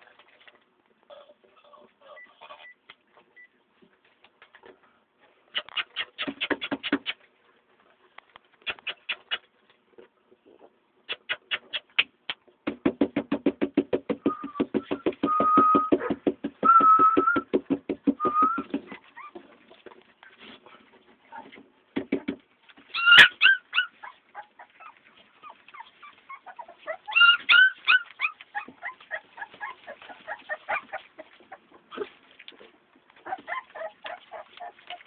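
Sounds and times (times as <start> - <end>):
dog whimpers and yelps: 1.1 - 2.8, 5.6 - 7.2, 18.2 - 19.7, 22.8 - 32.3, 33.2 - 35.0
dog whining: 1.1 - 2.8, 14.2 - 17.5, 18.2 - 19.6, 22.9 - 32.2, 33.2 - 35.0.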